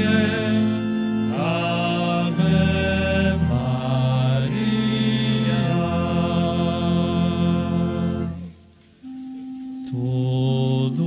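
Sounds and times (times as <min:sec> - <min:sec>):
congregation singing a hymn: 0:00.0 - 0:08.5, 0:09.7 - 0:11.0
low accompaniment: 0:00.0 - 0:11.0.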